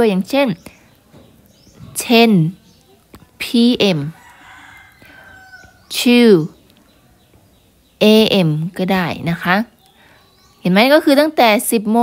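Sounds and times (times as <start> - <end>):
woman speaking: 0.0 - 0.7, 1.9 - 2.6, 3.4 - 4.2, 5.9 - 6.6, 8.0 - 9.8, 10.6 - 12.0.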